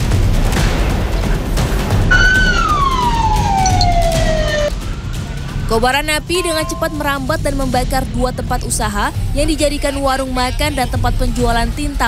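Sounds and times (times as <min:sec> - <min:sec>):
fire engine siren wail: 0:02.1 - 0:04.7.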